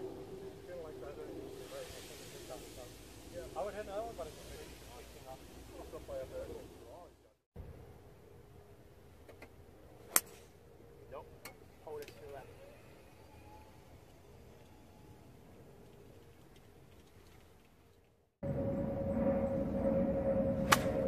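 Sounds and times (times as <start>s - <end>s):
golf club striking ball: 20.6s - 21.0s.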